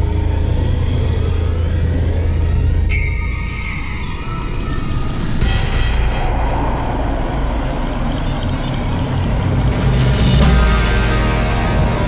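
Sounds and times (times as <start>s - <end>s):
dramatic music: 0.0s - 12.0s
steady high tones: 2.7s - 11.6s
deep vehicle-like rumble: 5.0s - 12.0s.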